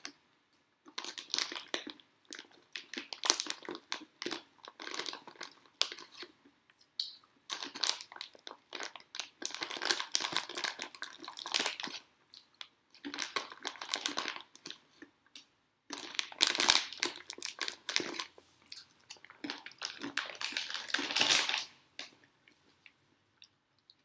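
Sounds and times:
crinkling and rustling: 0:15.9 - 0:23.2.

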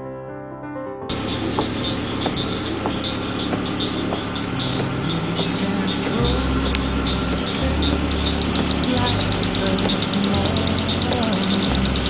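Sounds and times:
vehicle engine running: 0:01.1 - 0:12.0.

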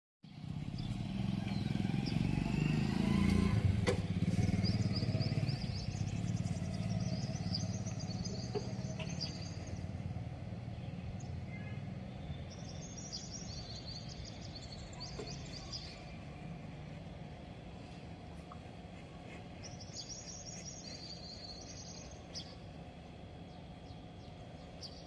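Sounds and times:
birds chirping: 0:00.3 - 0:25.0
vehicle engine running: 0:00.3 - 0:25.0.

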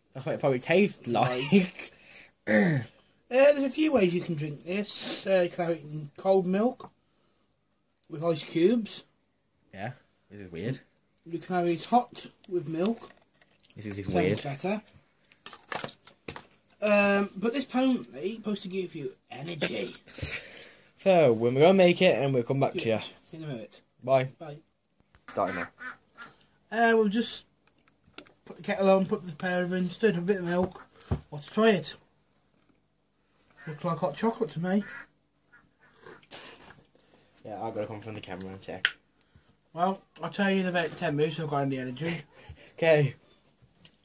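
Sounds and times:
faint mouth noises: 0:35.8 - 0:37.0.

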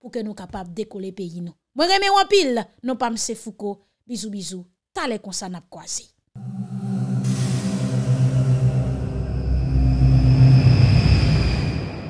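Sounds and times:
low drone with hiss: 0:06.4 - 0:12.0.

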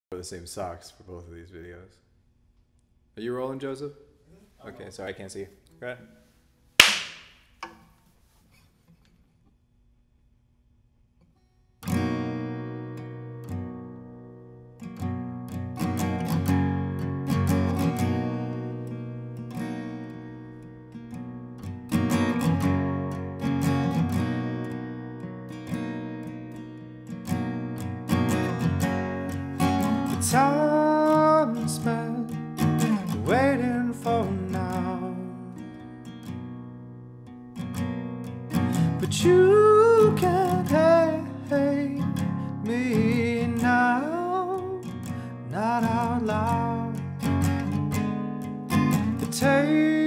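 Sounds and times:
hand clap: 0:06.8 - 0:07.6
acoustic guitar picked chords: 0:11.2 - 0:50.0.

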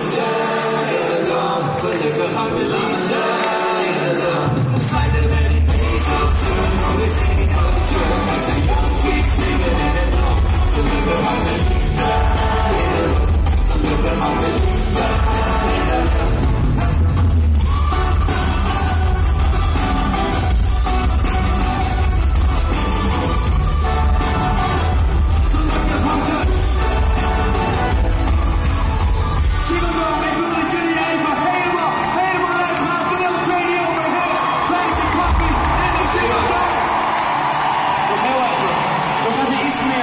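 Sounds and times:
live pop band playing: 0:00.0 - 0:40.0.

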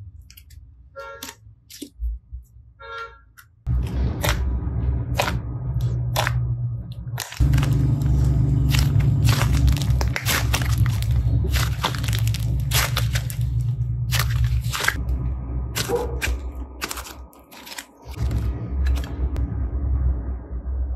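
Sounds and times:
steady low hum: 0:03.7 - 0:20.9
modelling clay squelching: 0:05.1 - 0:19.2.

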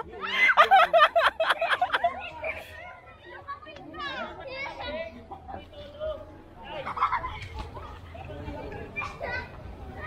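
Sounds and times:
children playing and calling out: 0:00.0 - 0:10.0.

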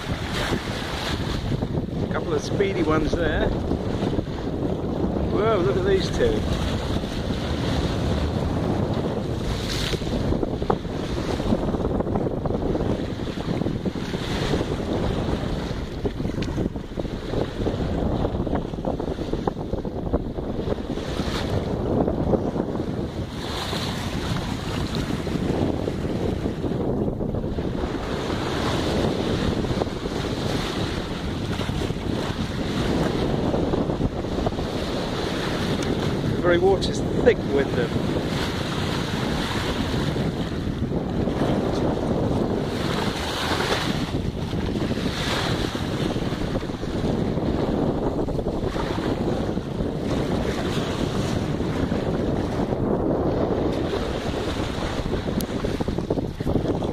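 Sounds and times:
water rushing along boat hull: 0:00.0 - 0:56.9
wind buffeting microphone: 0:00.0 - 0:56.9.

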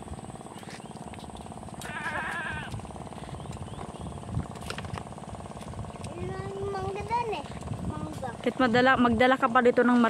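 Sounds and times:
small engine rumbling: 0:00.0 - 0:10.0
goat bleating: 0:01.8 - 0:02.8.

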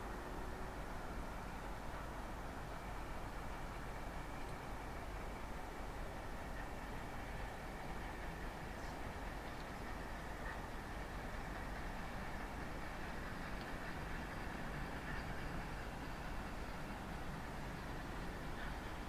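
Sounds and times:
distant train rumble: 0:00.0 - 0:19.0.

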